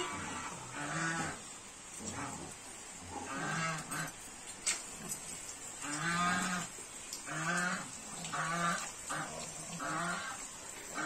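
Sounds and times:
water splashing in tub: 3.4s - 11.0s.

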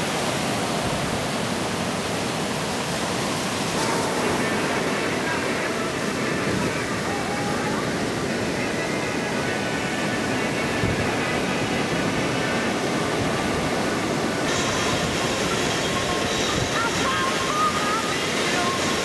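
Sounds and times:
ocean waves breaking: 0.0s - 19.0s
faint wavering tone: 3.7s - 13.6s.

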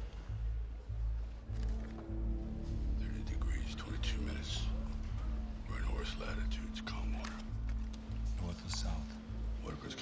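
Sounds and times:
whispered voices: 3.0s - 10.0s.

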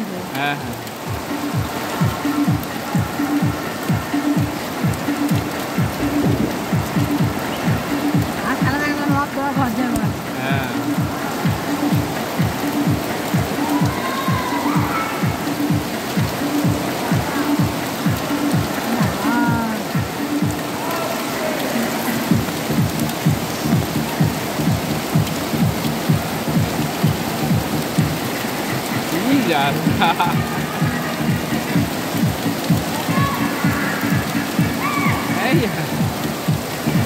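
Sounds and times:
heavy rain on a tent: 0.0s - 37.0s
low music beat: 0.3s - 20.7s, 21.9s - 37.0s.

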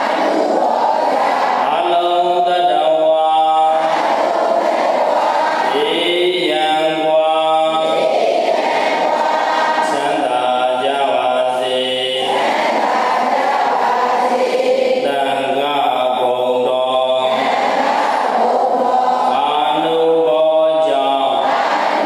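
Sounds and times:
devotional chanting voices: 0.0s - 22.0s.

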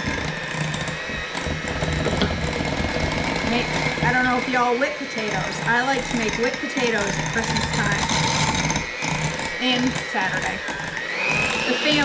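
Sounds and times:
electric mixer running: 0.0s - 12.0s.

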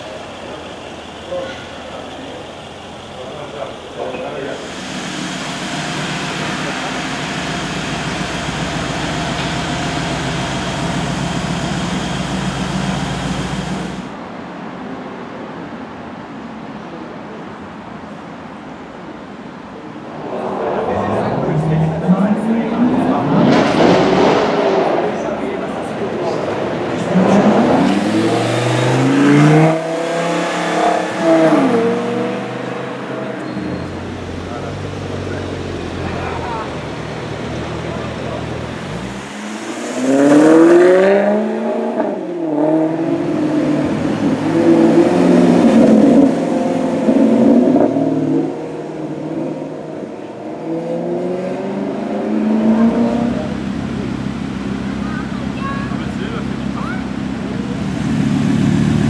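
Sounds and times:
supercar engines revving: 0.0s - 14.2s, 20.0s - 59.0s.

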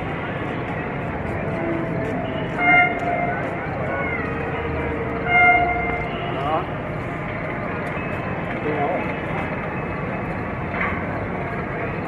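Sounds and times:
train running: 0.0s - 12.0s
locomotive horn toot: 1.7s - 3.4s, 5.2s - 6.4s.

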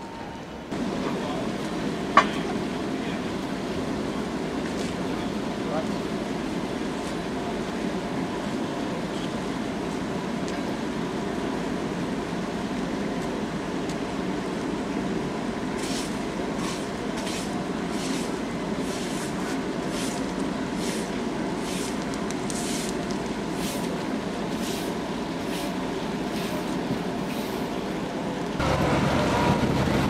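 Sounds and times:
tram engine rumble: 0.0s - 30.0s.

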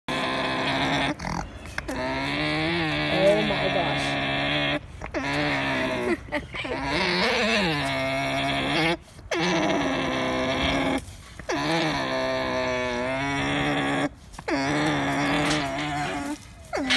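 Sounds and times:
llama calling: 0.1s - 16.9s.

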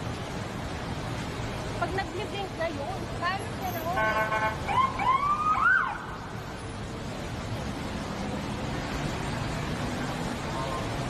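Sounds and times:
road traffic noise: 0.0s - 11.0s
ambulance siren wailing: 4.3s - 6.0s.

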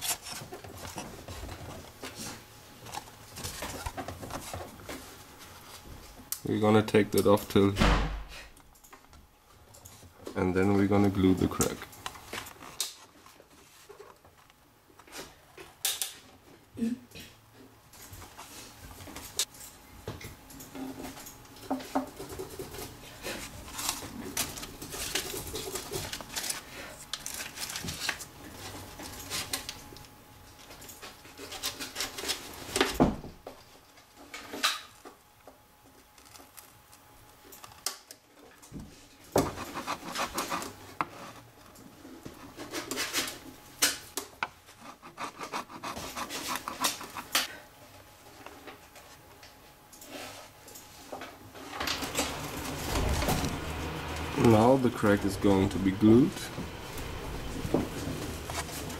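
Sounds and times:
hand tool scraping wood: 0.0s - 1.1s, 39.4s - 41.5s, 44.8s - 47.5s.

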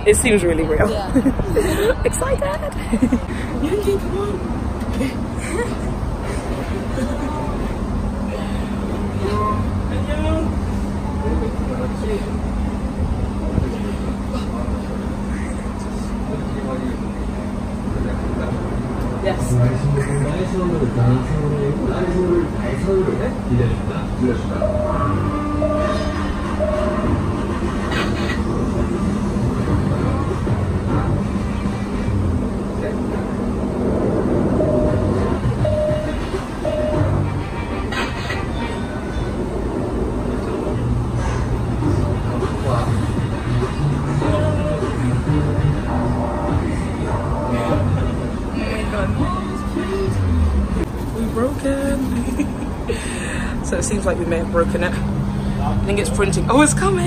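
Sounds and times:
scattered voices: 0.0s - 52.8s
constant hum: 0.0s - 57.0s
steady low rumble: 0.0s - 57.0s
short electronic beeps: 24.6s - 27.2s, 34.6s - 37.2s.

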